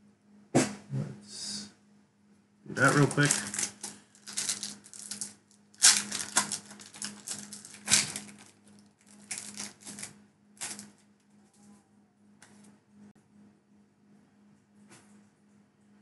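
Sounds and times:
foil wrapper crinkling: 2.8s - 11.0s.

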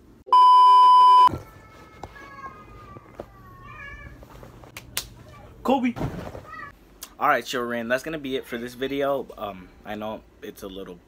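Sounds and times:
censor bleep: 0.3s - 1.3s.

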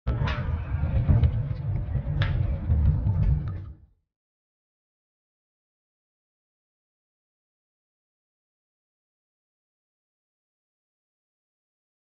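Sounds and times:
low rumble: 0.1s - 4.0s.

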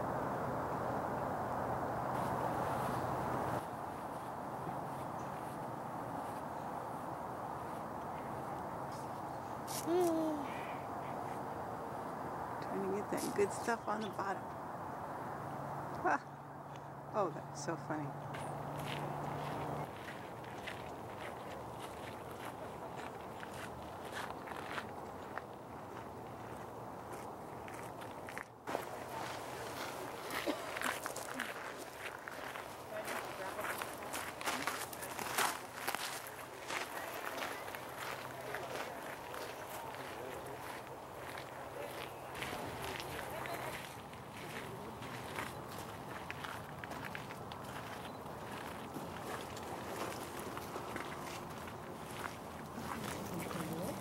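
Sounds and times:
footsteps: 18.2s - 54.0s.

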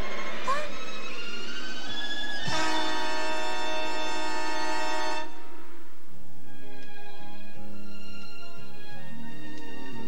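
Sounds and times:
cartoon music sustained chords: 0.0s - 10.0s.

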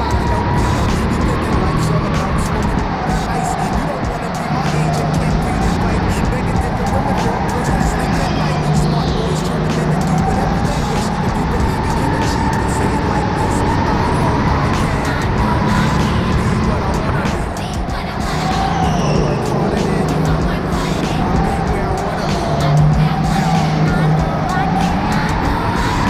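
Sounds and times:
go-kart engine: 4.3s - 26.0s.

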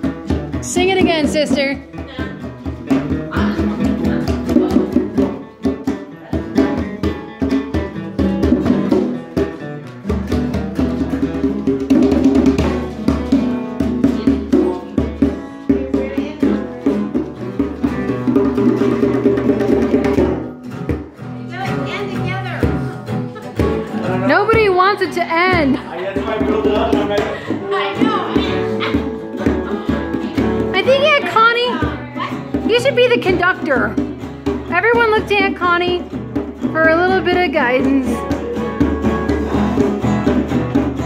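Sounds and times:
acoustic guitars strumming: 0.0s - 41.0s
drum beat: 0.0s - 41.0s.

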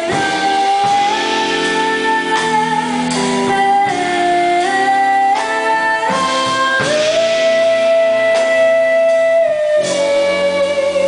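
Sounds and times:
drums: 0.0s - 11.0s
electric bass: 0.0s - 11.0s
electric guitar: 0.0s - 11.0s
person singing: 0.0s - 11.0s.

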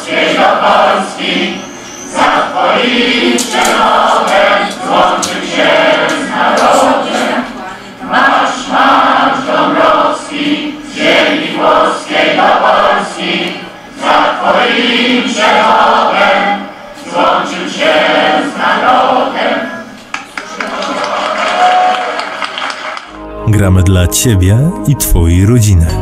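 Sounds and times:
crowd singing in unison: 0.0s - 20.8s.

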